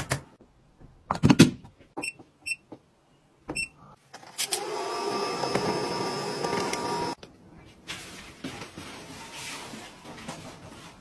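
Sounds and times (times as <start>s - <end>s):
small appliance motor whirring: 4.5s - 7.2s.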